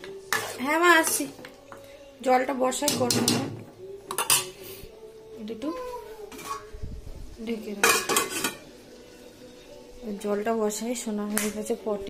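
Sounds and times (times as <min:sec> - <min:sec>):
metal spatula scraping a pan: 0:00.2 - 0:01.4, 0:06.3 - 0:06.8, 0:07.8 - 0:08.8.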